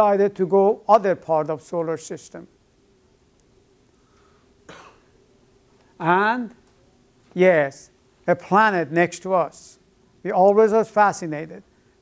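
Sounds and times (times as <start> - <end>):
faint room hum: 0.0 - 12.0
short cough: 4.7 - 5.1.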